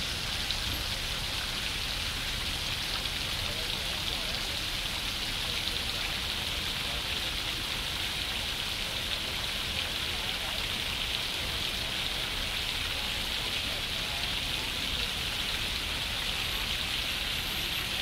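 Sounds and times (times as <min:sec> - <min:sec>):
fountain water falling: 0:00.0 - 0:18.0.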